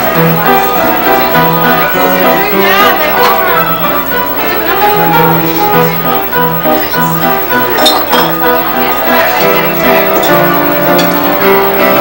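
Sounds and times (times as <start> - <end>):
keyboard chords: 0.0 - 12.0.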